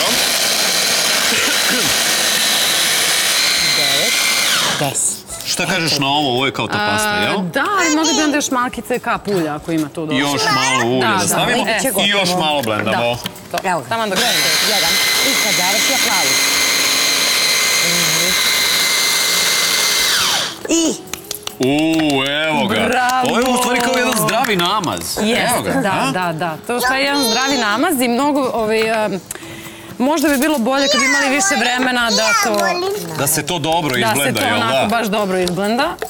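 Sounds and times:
hand blender motor whining: 0.0s - 5.0s, 14.0s - 20.7s.

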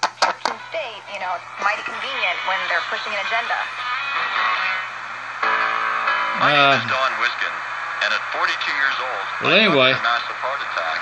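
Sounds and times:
music from radio speaker: 0.0s - 11.0s.

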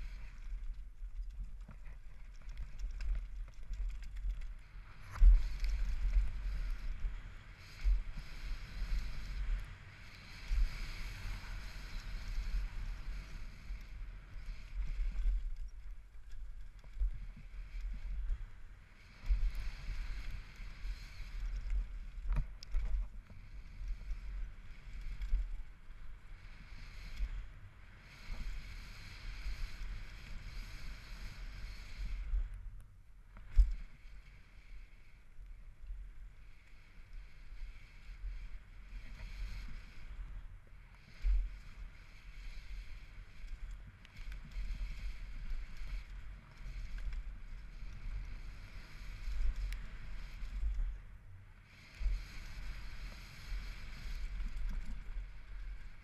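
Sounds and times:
bike clicks and rattles: 0.0s - 9.1s, 10.1s - 23.4s
tyre and trail noise: 0.0s - 56.0s
wind rumble on microphone: 0.0s - 56.0s.

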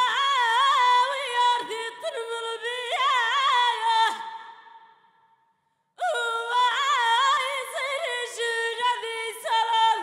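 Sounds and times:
woman singing into a microphone: 0.0s - 5.1s, 5.9s - 10.0s.

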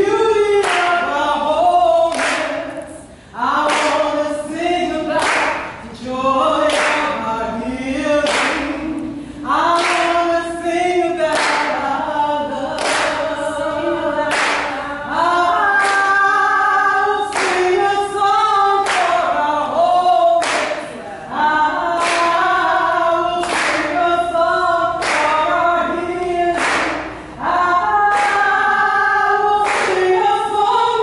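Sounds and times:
group singing a cappella: 0.0s - 31.0s
hand claps in unison: 0.6s - 1.0s, 2.1s - 2.9s, 3.7s - 4.0s, 5.2s - 5.8s, 6.7s - 7.1s, 8.2s - 8.8s, 9.8s - 10.1s, 11.3s - 11.8s, 12.8s - 13.2s, 14.3s - 14.7s, 17.3s - 17.6s, 18.8s - 19.2s, 20.4s - 20.8s, 22.0s - 22.4s, 23.4s - 24.0s, 25.0s - 25.3s, 26.6s - 27.2s, 28.1s - 28.5s, 29.6s - 30.1s.

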